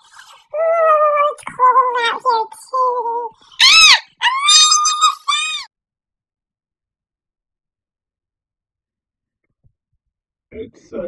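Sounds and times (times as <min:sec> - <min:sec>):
person screaming high-pitched: 0:03.6 - 0:05.7.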